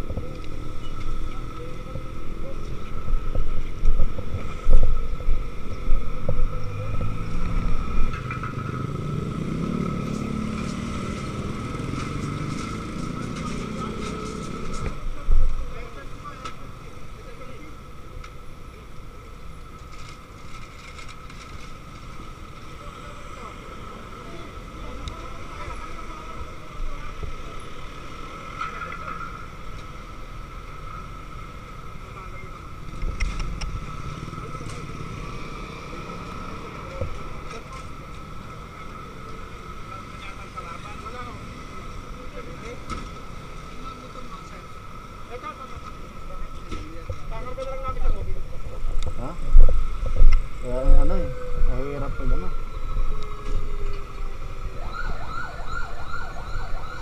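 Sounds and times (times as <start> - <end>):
road traffic: 0.0 - 57.0
vehicle passing: 5.4 - 15.1, 32.8 - 44.9
motorcycle engine: 6.4 - 15.0.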